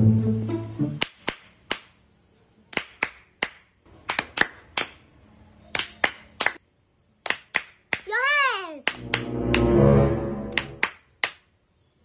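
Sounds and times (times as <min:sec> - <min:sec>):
hands clapping: 0:01.0 - 0:02.0, 0:02.7 - 0:05.0, 0:05.7 - 0:06.6, 0:07.2 - 0:08.2, 0:08.8 - 0:09.8, 0:10.5 - 0:11.5.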